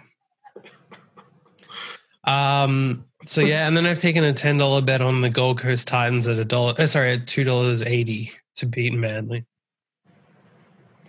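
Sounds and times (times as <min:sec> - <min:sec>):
person breathing softly: 0:01.6 - 0:02.1.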